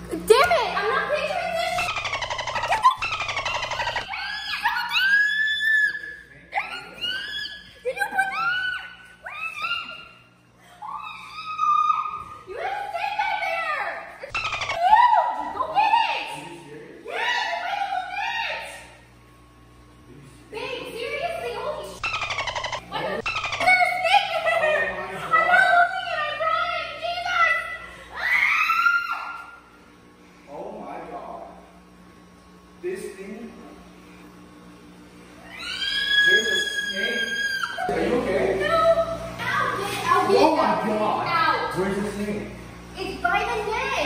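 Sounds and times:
woman squealing: 1.6 - 12.4, 14.2 - 16.3, 22.0 - 24.5, 28.1 - 29.5, 35.4 - 37.9
woman screaming in fright: 10.8 - 12.4, 14.8 - 16.2, 28.1 - 29.5, 35.4 - 37.9.

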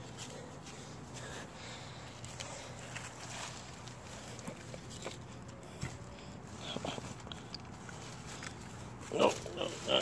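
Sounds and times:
puppy grunting: 9.0 - 10.0.

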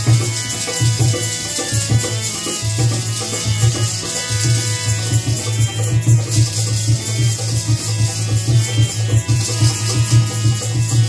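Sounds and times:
harmonium chords: 0.0 - 11.0
tabla drum beat: 0.0 - 11.0.

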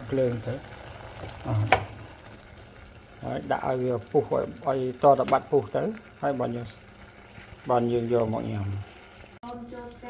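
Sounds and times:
pot boiling bubbling: 0.0 - 10.0.

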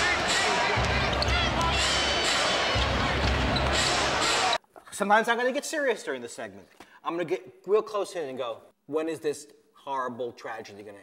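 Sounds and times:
crowd chatter: 0.0 - 4.6
basketball bouncing on court: 0.2 - 2.0, 2.8 - 3.9
sneaker squeaks: 0.8 - 4.6.

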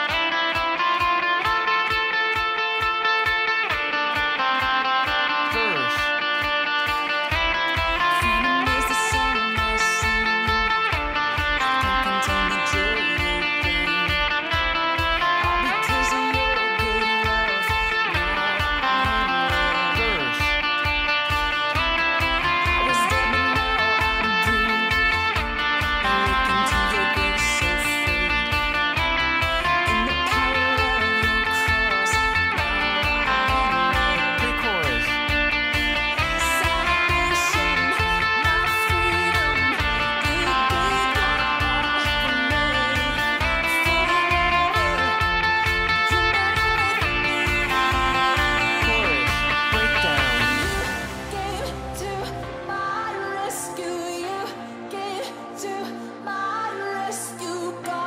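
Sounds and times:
electric guitar chords ringing: 0.0 - 58.0.

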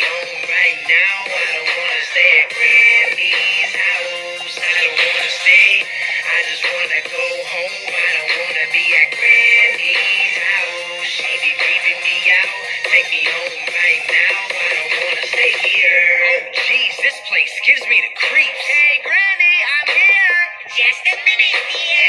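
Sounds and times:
high-pitched singing over backing track: 0.0 - 22.0.

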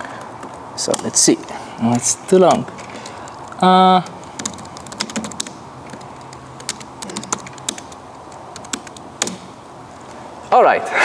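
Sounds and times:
computer keyboard typing: 0.0 - 9.6.

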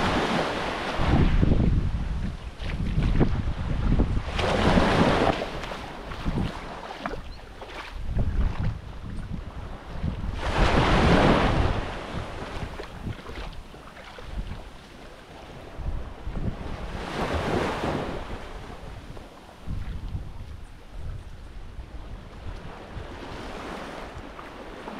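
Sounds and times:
small waves washing onto beach: 0.0 - 24.9
wind gusting on microphone: 0.0 - 24.9.

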